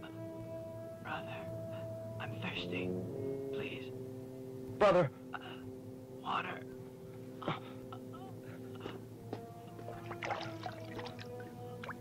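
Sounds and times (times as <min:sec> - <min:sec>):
film music with low notes: 0:00.0 - 0:12.0.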